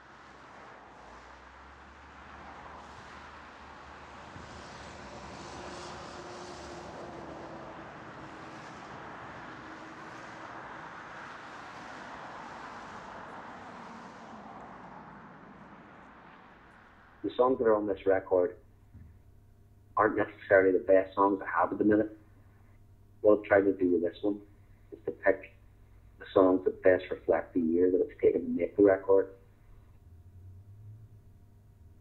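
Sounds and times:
traffic hum: 0:00.0 - 0:32.0
faint steady tone: 0:15.9 - 0:32.0.

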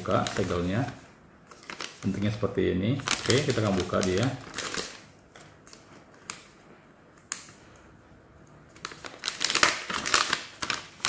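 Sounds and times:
plastic pouch crinkling: 0:00.0 - 0:06.5, 0:08.7 - 0:11.0.

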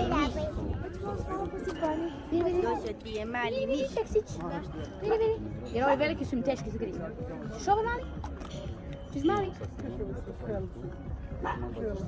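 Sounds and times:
background music: 0:00.0 - 0:12.0
people's voices: 0:00.0 - 0:12.0
puppy yip: 0:11.4 - 0:11.8.

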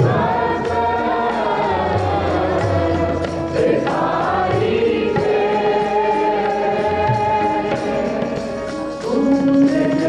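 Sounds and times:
harmonium: 0:00.0 - 0:10.0
low tabla strokes: 0:00.0 - 0:10.0
men singing a hymn: 0:00.0 - 0:10.0.

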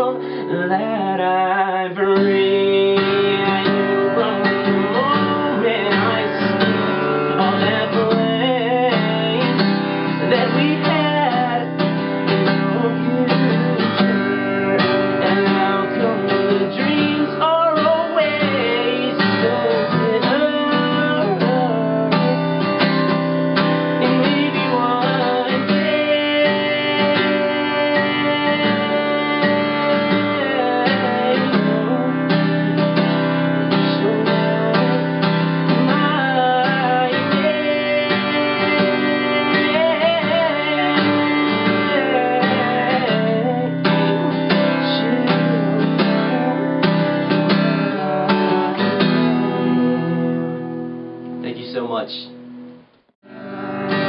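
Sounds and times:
man singing: 0:00.0 - 0:23.2, 0:23.8 - 0:50.7
acoustic guitar strumming: 0:00.0 - 0:54.0.

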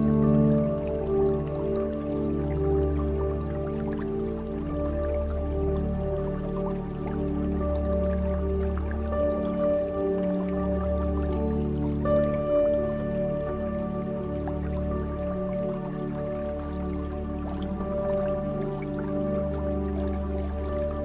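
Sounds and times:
slow ambient drone music: 0:00.0 - 0:21.0
water dripping: 0:00.0 - 0:21.0.

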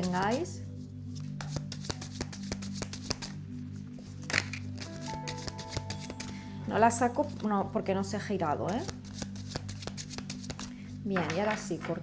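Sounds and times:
soft background music: 0:00.0 - 0:12.0
cards being shuffled: 0:01.1 - 0:06.4, 0:08.7 - 0:11.8.

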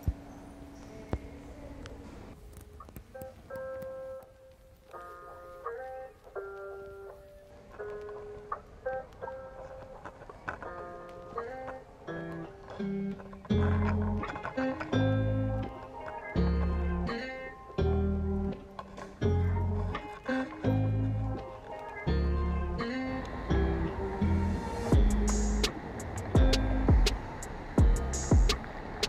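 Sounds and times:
plucked guitar melody: 0:00.0 - 0:29.0.

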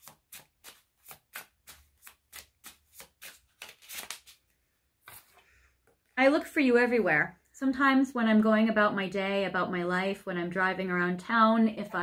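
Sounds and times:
cards shuffled by hand: 0:00.0 - 0:05.4.

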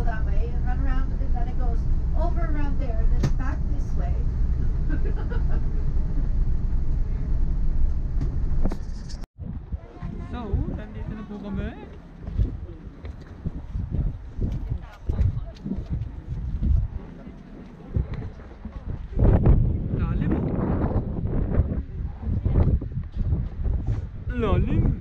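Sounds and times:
people talking: 0:00.0 - 0:04.2, 0:13.9 - 0:20.4
wind buffeting microphone: 0:00.0 - 0:25.0.

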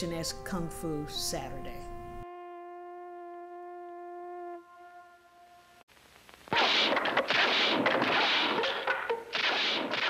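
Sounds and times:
long held musical note: 0:00.0 - 0:05.8.

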